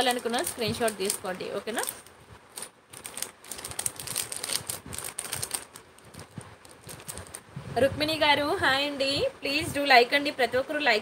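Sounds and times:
woman speaking: 0.0 - 2.0, 7.8 - 11.0
plastic sachets crinkling: 0.0 - 7.5.

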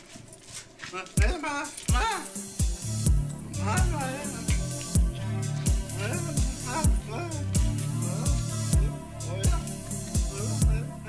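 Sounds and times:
kick drum thumps: 1.2 - 10.9
sampled voice changing pitch: 3.5 - 11.0.

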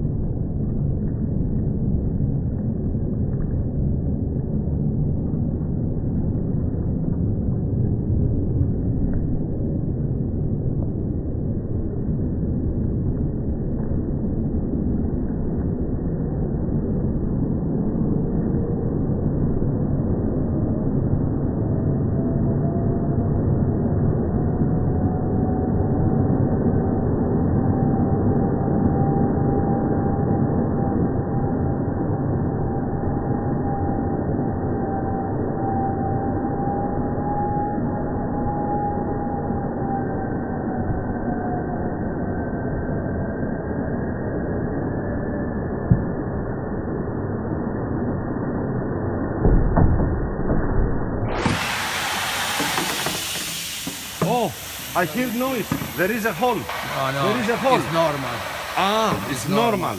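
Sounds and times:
slowed gas rush rumble: 51.3 - 59.9
hiss of escaping gas: 51.4 - 59.8.

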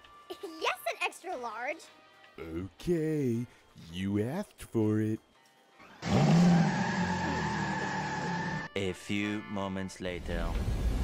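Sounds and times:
tires screeching with engine: 5.9 - 8.7.

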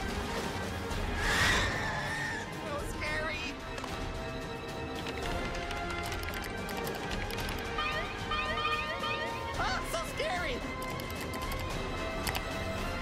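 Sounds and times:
tense music: 0.0 - 13.0
rapid clicks: 3.7 - 7.8, 10.6 - 12.8.

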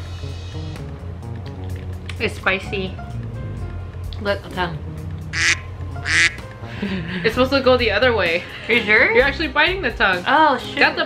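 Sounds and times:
background music: 0.0 - 11.0
duck quacks: 5.4 - 6.4.

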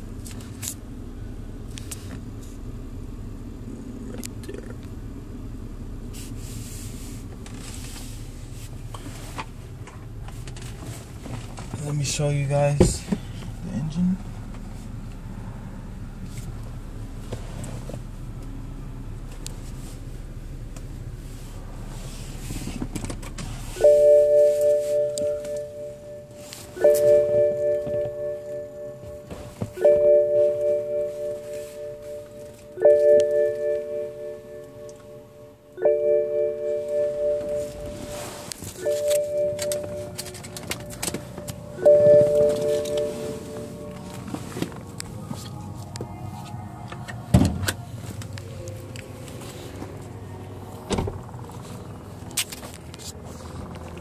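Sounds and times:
car warning chime: 11.7 - 14.5, 23.4 - 52.2
thump: 47.3 - 47.6.

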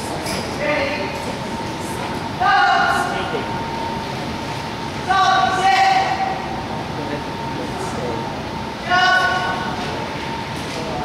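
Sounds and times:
indoor hall room rumble and hiss: 0.0 - 11.0.

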